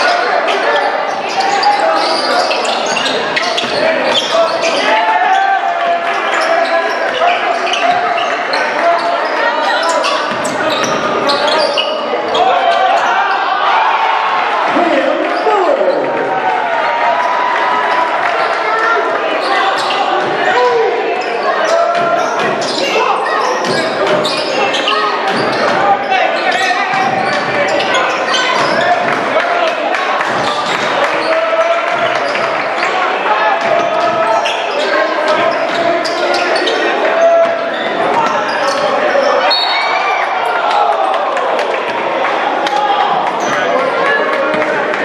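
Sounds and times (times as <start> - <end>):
chatter and calls of crowd: 0.0 - 45.0.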